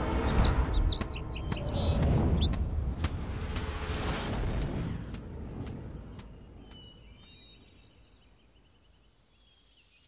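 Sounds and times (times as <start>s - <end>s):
steady low rumble: 0.0s - 8.4s
small birds chirping: 0.2s - 3.7s, 5.1s - 10.0s.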